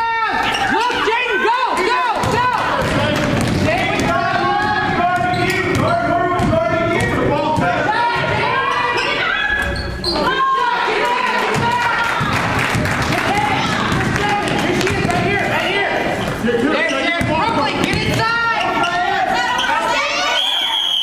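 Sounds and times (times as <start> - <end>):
people shouting in hall: 0.0 - 5.1, 7.7 - 16.2, 18.0 - 21.0
basketball bouncing on gym floor: 2.2 - 8.4, 11.5 - 15.4, 17.2 - 18.3.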